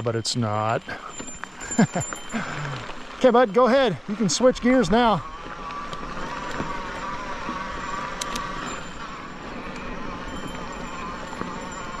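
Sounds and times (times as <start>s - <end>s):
person laughing: 1.6s - 2.8s.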